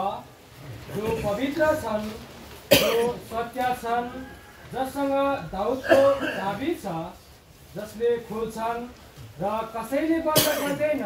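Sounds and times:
person speaking: 0.0 - 11.0
sharp cough: 2.7 - 3.2, 5.8 - 6.6, 10.4 - 10.9.

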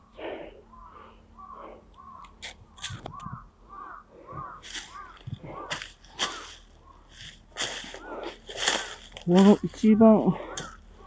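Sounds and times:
crows cawing: 0.0 - 11.0
footsteps crunching dry leaves: 4.4 - 11.0.

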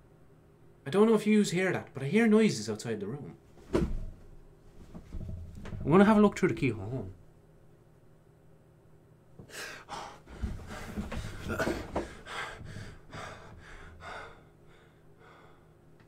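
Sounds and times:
man breathing and gasping: 9.4 - 15.9.

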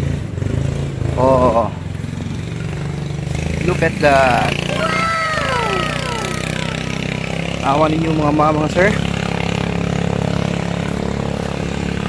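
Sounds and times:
low engine hum: 0.0 - 12.0
man exclaiming whoa: 4.7 - 6.9.

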